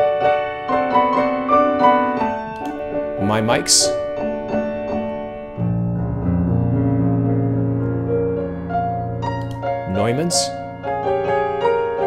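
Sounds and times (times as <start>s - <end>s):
deep bass piano chord: 0.0s - 12.0s
grand piano playing: 0.0s - 12.0s.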